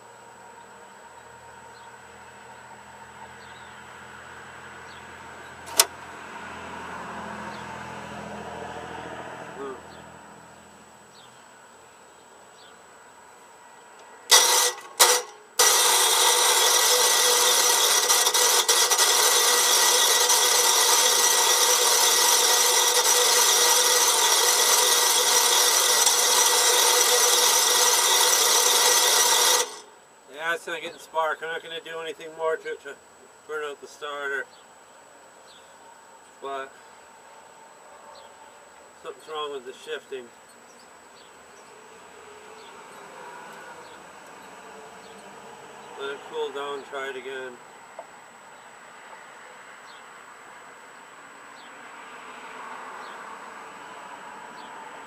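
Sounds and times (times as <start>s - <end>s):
engine starter cranking: 5.7s - 6.0s, 14.3s - 29.9s.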